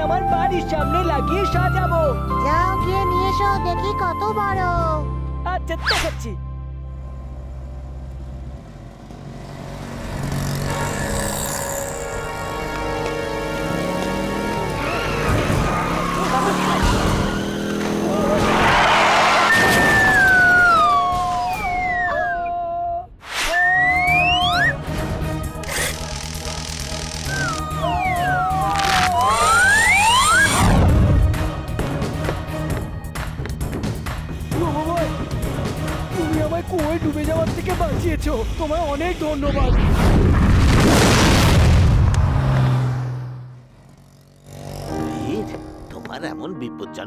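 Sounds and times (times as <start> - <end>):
whistle-like tone sliding downward: 19.4 - 22.6, 23.3 - 24.8, 27.2 - 30.8
cartoon jetpack blast-off: 27.2 - 31.0, 39.6 - 42.1.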